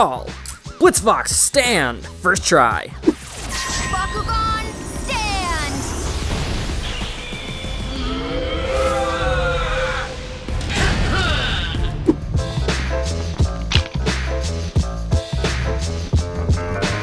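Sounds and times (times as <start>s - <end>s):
dramatic music: 2.9s - 17.0s
creature cry: 7.9s - 12.0s.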